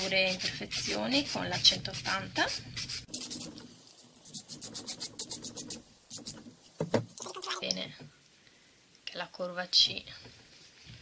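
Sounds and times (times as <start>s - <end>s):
nail file rasping on nail: 0.0s - 3.5s, 4.2s - 6.4s.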